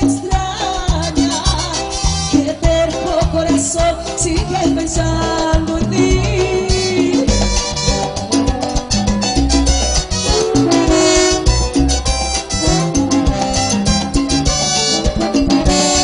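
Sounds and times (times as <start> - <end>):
live band playing dance music: 0.0 - 16.0.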